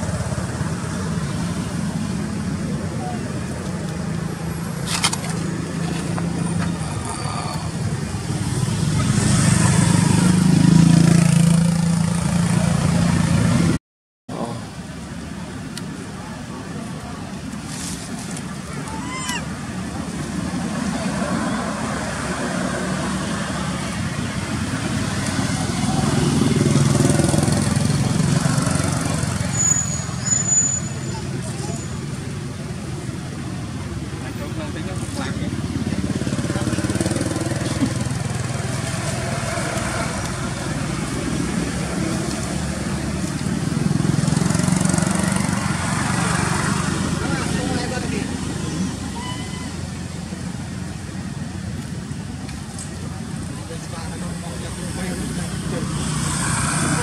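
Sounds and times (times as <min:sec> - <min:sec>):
road traffic passing: 0:00.0 - 0:57.0.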